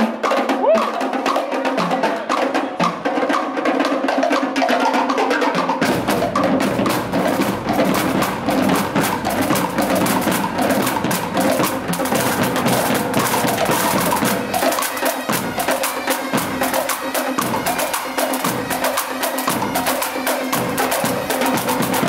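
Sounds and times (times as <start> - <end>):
snare drums rapid rhythm: 0.0 - 22.0
lower drums: 5.8 - 16.8.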